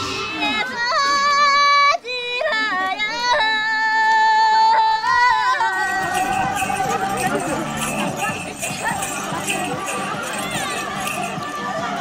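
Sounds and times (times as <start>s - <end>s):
high voice singing folk song: 0.0s - 12.0s.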